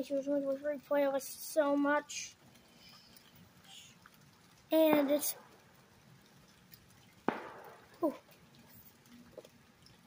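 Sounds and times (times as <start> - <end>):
distant firework bang: 7.3 - 8.2.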